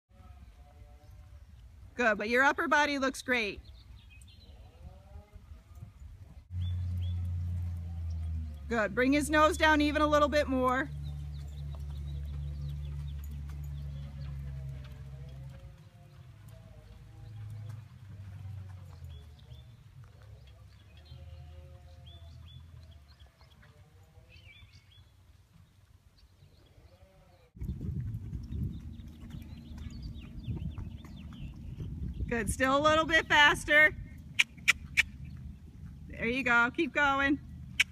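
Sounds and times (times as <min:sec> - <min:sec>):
faint hoofbeats: 0:03.7 - 0:37.9
horse hooves thudding on ground: 0:05.9 - 0:26.3, 0:27.6 - 0:37.9
steady low rumble: 0:27.6 - 0:37.9
animal calls and high chirps: 0:34.3 - 0:35.4.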